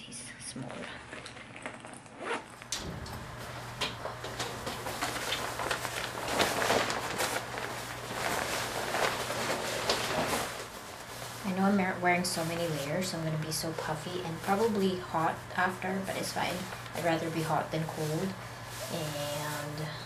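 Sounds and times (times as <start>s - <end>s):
zipper handling: 1.0s - 2.7s
nylon jacket rustling: 1.1s - 2.7s, 3.4s - 13.1s.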